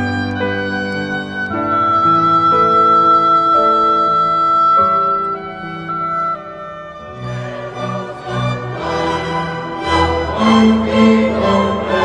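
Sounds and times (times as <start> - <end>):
clarinet long high note: 0.0 - 7.7.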